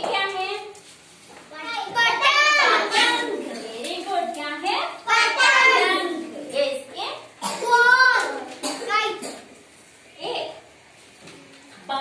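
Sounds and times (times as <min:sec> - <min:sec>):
adult and children talking: 0:01.5 - 0:10.8.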